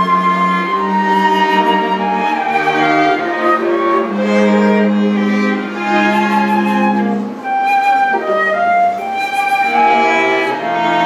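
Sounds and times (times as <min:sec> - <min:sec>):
cello sustaining low note: 0:00.0 - 0:11.0
flute holding high notes: 0:00.0 - 0:11.0.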